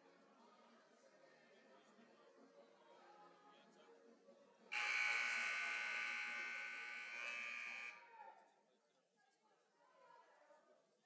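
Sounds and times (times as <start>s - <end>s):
scoreboard horn buzzing: 4.7s - 8.0s.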